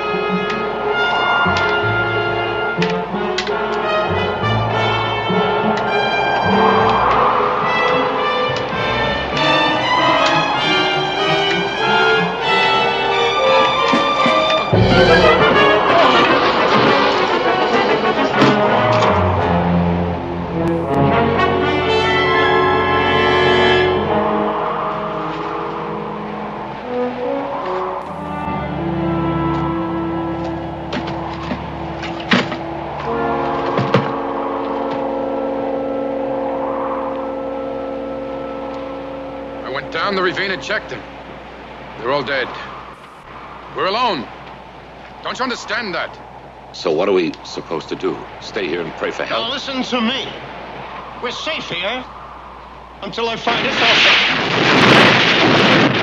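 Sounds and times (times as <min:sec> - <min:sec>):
dramatic orchestral music with brass: 0:00.0 - 0:46.7.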